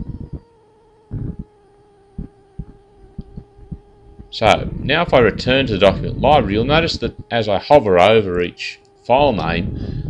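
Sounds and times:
soft low thumps: 0.0s - 0.5s, 1.1s - 1.5s, 2.1s - 7.4s
faint electrical hum: 0.0s - 10.0s.

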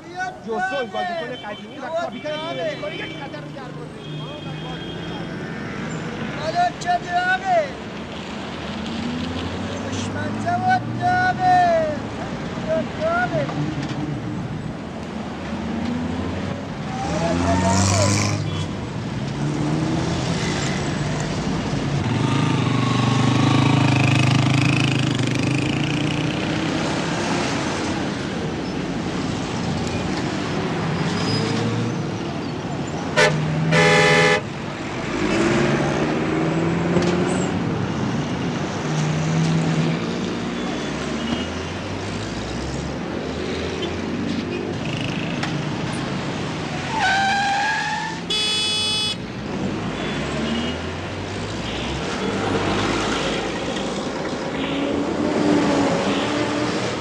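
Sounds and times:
busy street traffic: 0.0s - 57.0s
car horn: 33.2s - 34.5s, 48.3s - 49.2s.

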